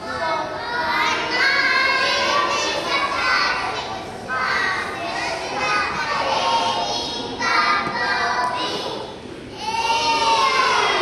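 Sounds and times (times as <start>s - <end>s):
children singing together: 0.0s - 11.0s.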